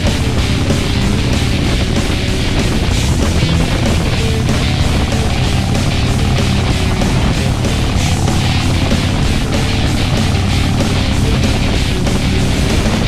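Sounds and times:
background music: 0.0 - 13.0
motorcycle engine droning: 0.0 - 13.0.

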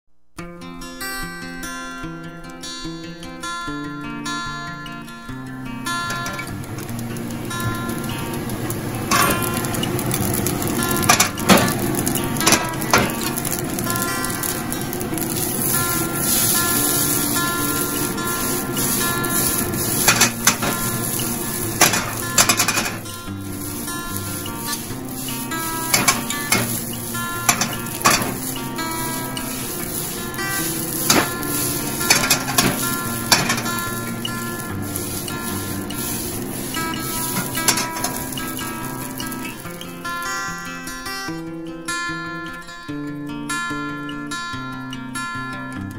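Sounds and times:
acoustic guitar music: 0.4 - 45.9
rice sizzling in a wok: 5.7 - 41.3
utensil clanking and scraping wok: 5.9 - 41.0.

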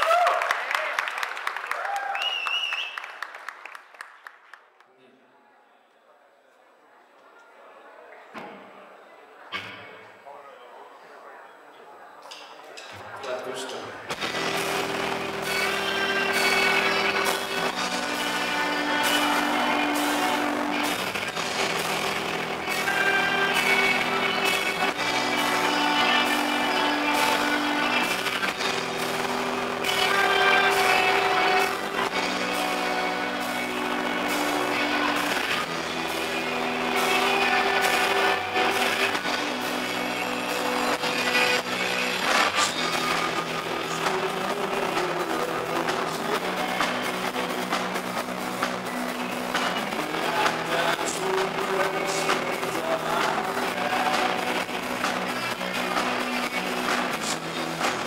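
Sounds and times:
drums and cymbals: 14.1 - 58.0
electric guitars playing chords: 14.1 - 58.0.

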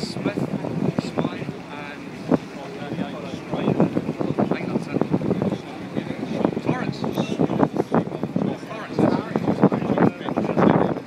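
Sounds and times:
people chatting: 0.0 - 11.0
wind buffeting microphone: 0.0 - 11.0.

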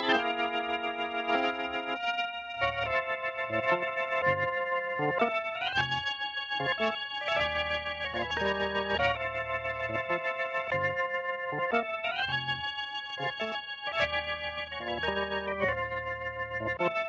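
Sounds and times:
organ chords over bass line: 0.0 - 6.0, 6.6 - 17.0.

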